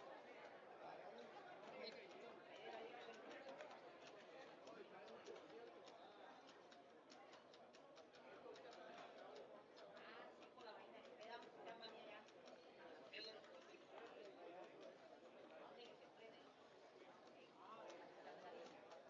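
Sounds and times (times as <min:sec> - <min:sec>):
distant voices and chatter: 0:00.0 - 0:19.0
faint ticks: 0:01.8 - 0:15.0.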